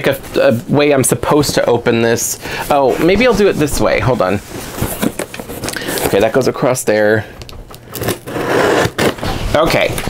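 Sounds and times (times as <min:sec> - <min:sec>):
cardboard box being torn open: 0:07.9 - 0:09.9.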